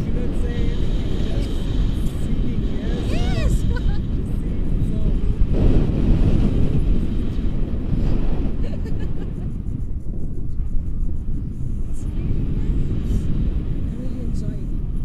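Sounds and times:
wordless voice: 0.0s - 5.6s, 11.4s - 14.8s
wind buffeting microphone: 0.0s - 15.0s.

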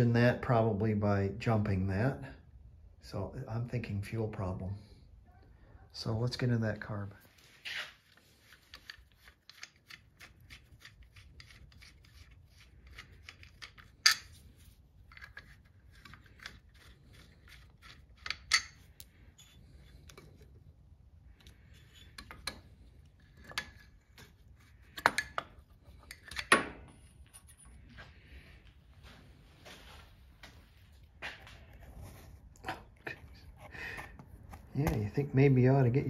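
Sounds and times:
metal tool clicking and scraping: 8.5s - 20.6s, 21.4s - 27.8s.

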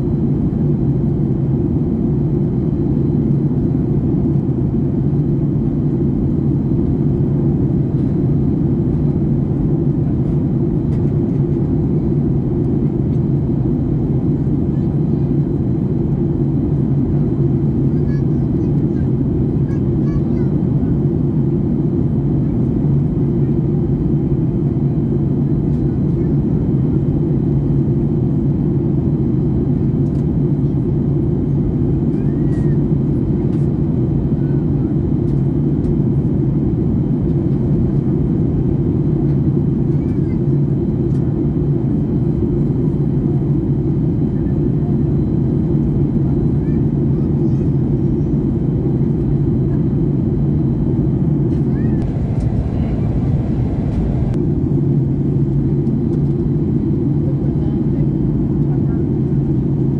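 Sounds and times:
airplane cabin engine drone: 0.0s - 59.9s.

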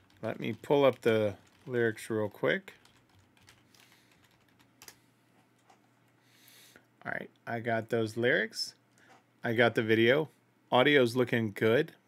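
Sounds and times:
computer keyboard typing: 0.0s - 5.0s.

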